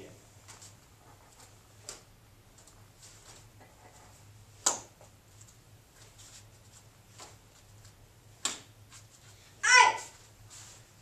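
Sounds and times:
bare feet on foam mats: 0:00.4 - 0:11.0.

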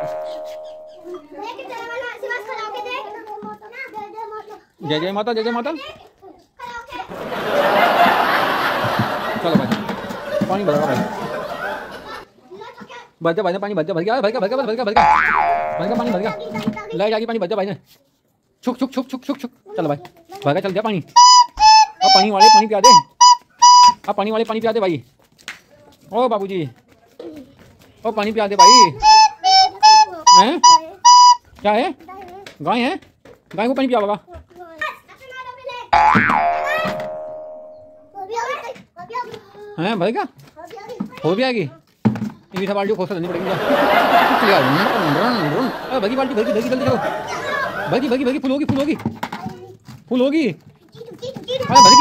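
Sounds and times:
cartoon boing sound effect: 0:00.0 - 0:01.3, 0:15.0 - 0:17.0, 0:28.6 - 0:29.2, 0:36.0 - 0:38.1
high-pitched childlike voice: 0:00.0 - 0:04.7, 0:15.8 - 0:17.0, 0:21.2 - 0:23.1, 0:28.6 - 0:31.4, 0:36.5 - 0:37.3, 0:50.9 - 0:52.0
voice: 0:09.3 - 0:11.3, 0:15.8 - 0:17.1, 0:43.2 - 0:49.7, 0:51.4 - 0:52.0.

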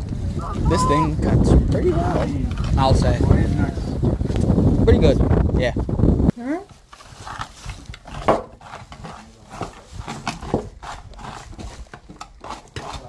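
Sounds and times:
rotary slicer cutting cucumbers: 0:08.0 - 0:13.0.

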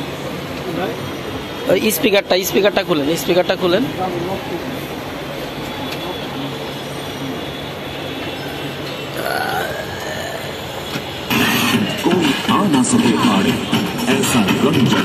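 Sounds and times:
voices: 0:00.5 - 0:15.0.

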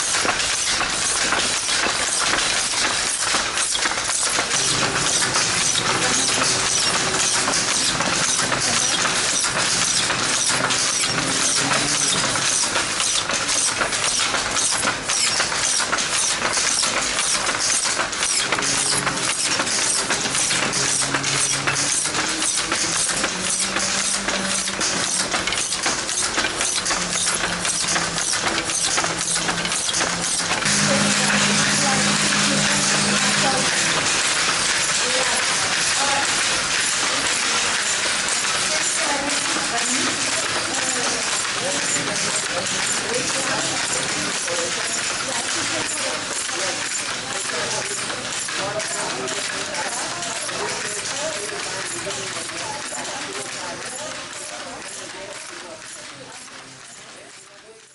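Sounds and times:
wooden handlooms clattering: 0:00.0 - 0:57.9
voices: 0:27.0 - 0:56.5.

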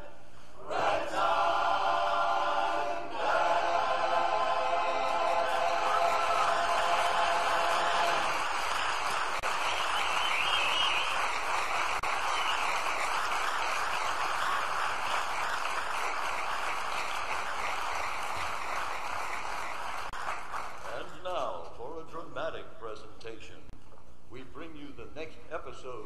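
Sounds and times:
audience applause: 0:04.8 - 0:21.2.

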